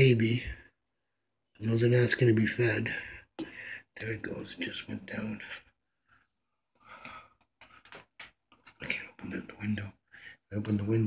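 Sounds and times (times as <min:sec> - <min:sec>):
man speaking: 0:00.0 - 0:00.6, 0:01.6 - 0:05.6, 0:08.8 - 0:11.0
breathy noise close to microphone: 0:02.8 - 0:04.0, 0:05.3 - 0:08.1.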